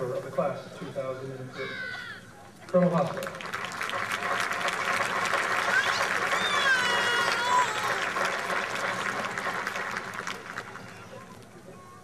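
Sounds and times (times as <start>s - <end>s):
crowd cheering: 1.7s - 12.0s
crowd applauding: 2.7s - 11.5s.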